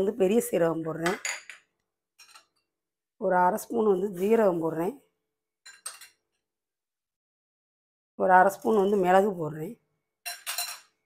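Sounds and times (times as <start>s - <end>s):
metallic clinks of kitchenware: 2.2s - 2.6s, 5.7s - 6.2s, 10.2s - 11.0s.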